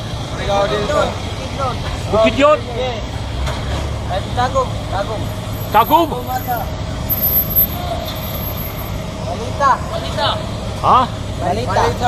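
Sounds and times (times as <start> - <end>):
diesel engine running: 0.0 - 12.0.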